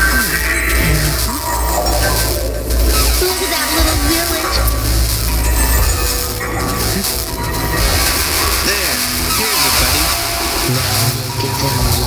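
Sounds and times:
heavy bass: 0.0s - 12.0s
noisy electronic music: 0.0s - 12.0s.

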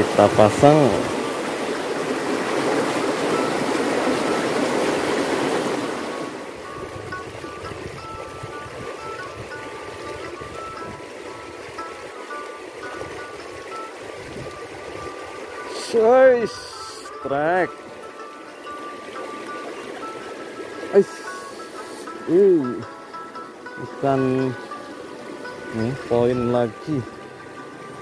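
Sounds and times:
stream rushing over stones: 0.0s - 28.0s
faint background music: 6.6s - 28.0s.

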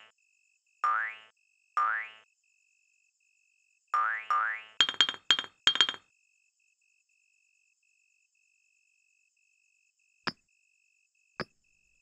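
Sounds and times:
crickets chirping: 0.0s - 3.9s, 4.8s - 12.0s.

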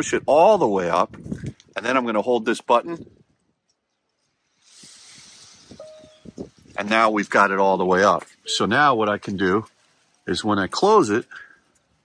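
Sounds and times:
faint steady hiss: 4.1s - 12.0s
short electronic beep: 5.8s - 6.4s, 8.4s - 8.9s.

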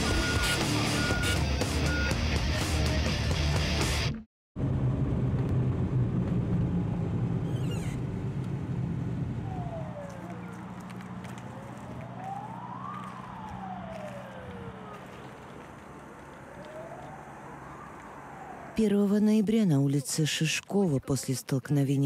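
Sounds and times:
car engine and road noise: 4.6s - 19.9s
police siren wailing: 9.3s - 19.4s.

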